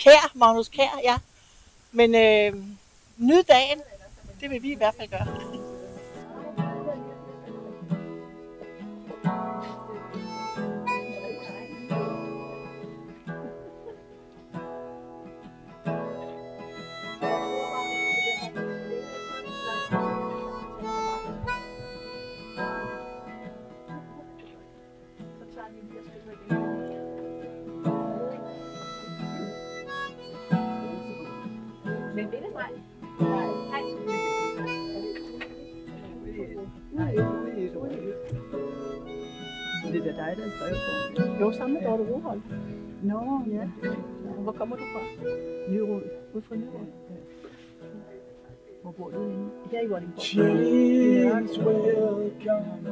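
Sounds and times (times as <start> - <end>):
strummed acoustic guitar: 4.5 - 52.9
harmonica: 5.2 - 14.0, 14.9 - 24.2, 27.4 - 47.9.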